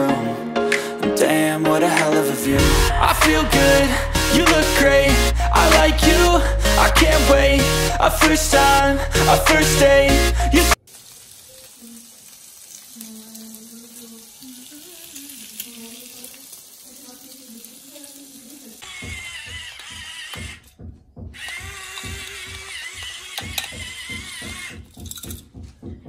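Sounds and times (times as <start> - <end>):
eggs frying in a pan: 10.8 - 19.6
electric pepper grinder whirring: 18.8 - 20.7, 21.4 - 25.0.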